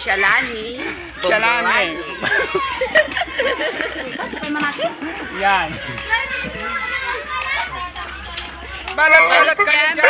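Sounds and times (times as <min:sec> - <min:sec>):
children's voices: 0:00.0 - 0:04.0, 0:04.6 - 0:10.0
voices chattering: 0:00.0 - 0:10.0.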